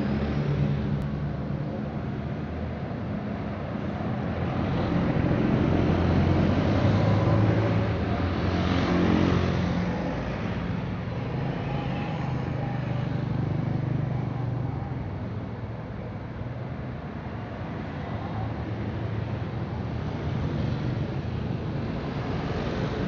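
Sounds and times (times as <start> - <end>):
steady flow of traffic: 0.0 - 23.0
bus driving by: 3.5 - 15.4.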